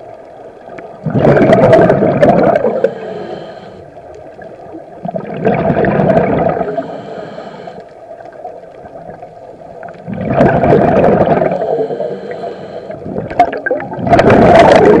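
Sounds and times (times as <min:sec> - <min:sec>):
gurgling exhaled bubbles: 0:00.9 - 0:03.0, 0:04.4 - 0:07.0, 0:08.8 - 0:15.0
regulator breathing underwater: 0:02.5 - 0:04.0, 0:06.4 - 0:08.0, 0:11.2 - 0:13.3.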